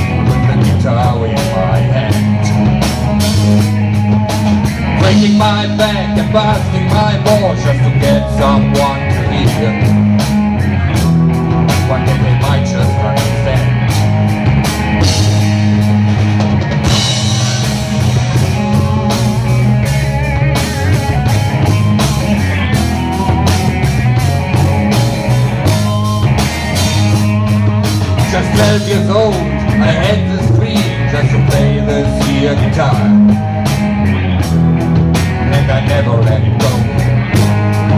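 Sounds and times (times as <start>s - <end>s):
drum kit beat: 0.0s - 37.9s
electric guitars: 0.0s - 37.9s.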